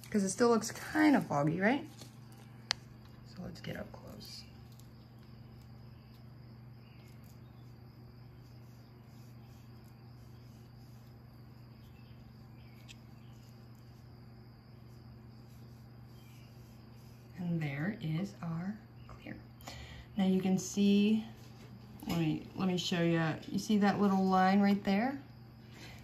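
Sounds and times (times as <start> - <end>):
low electrical hum: 0.0 - 26.0.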